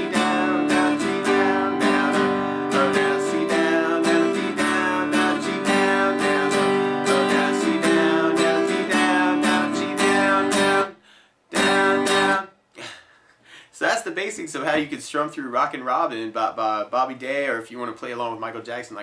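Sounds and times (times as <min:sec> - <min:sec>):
acoustic guitar strumming: 0:00.0 - 0:12.5.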